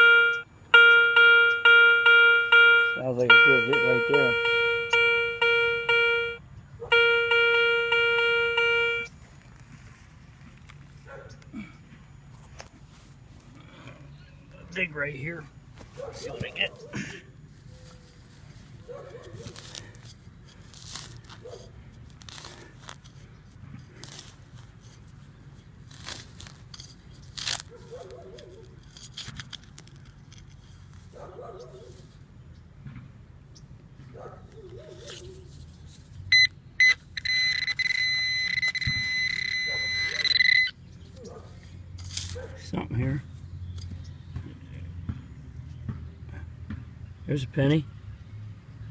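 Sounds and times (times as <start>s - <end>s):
short electronic beeps: 0.0s - 9.1s, 36.3s - 40.8s
steady buzzing electronic tone: 0.0s - 9.2s
knife cutting and scraping soil: 15.8s - 31.2s, 34.8s - 36.3s, 41.3s - 42.6s.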